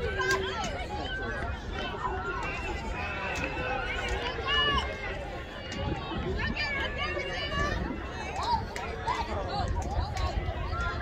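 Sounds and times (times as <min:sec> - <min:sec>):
people calling out and talking: 0:00.0 - 0:11.0.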